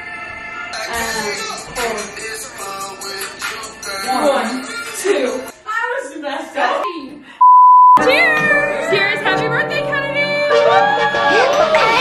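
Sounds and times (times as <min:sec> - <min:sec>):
censor bleep: 0:07.4 - 0:08.1.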